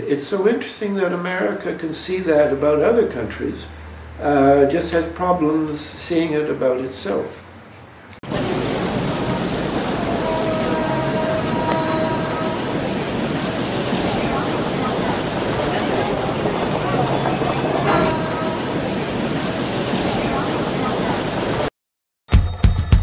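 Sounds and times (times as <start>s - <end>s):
street traffic: 0.0s - 21.7s
faint horn tones: 10.0s - 13.0s, 17.7s - 18.8s
crowd voices: 11.6s - 21.7s.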